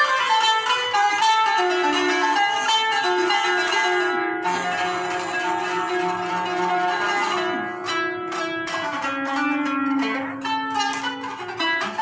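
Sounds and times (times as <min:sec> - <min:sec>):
plucked zither melody: 0:00.0 - 0:12.0.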